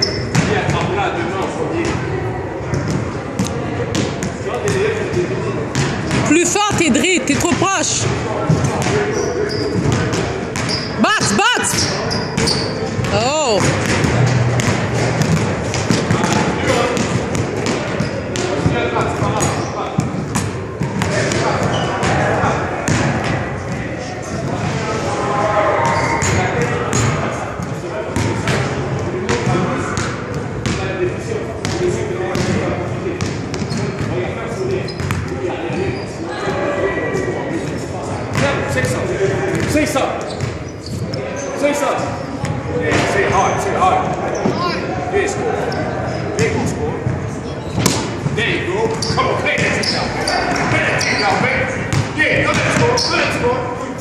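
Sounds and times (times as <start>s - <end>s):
sneaker squeaks: 0.0s - 0.8s, 8.5s - 23.0s, 25.5s - 28.3s, 33.2s - 44.9s, 45.6s - 53.4s
murmur of voices: 0.0s - 54.0s
basketballs bouncing on hardwood: 12.4s - 22.2s.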